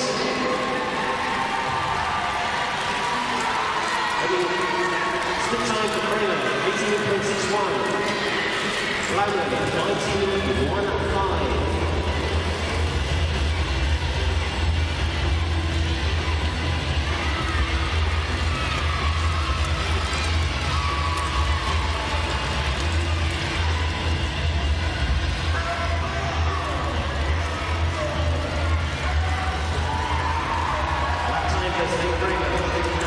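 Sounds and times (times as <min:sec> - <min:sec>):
background music: 0:00.0 - 0:33.0
faint crowd murmur: 0:00.0 - 0:33.0.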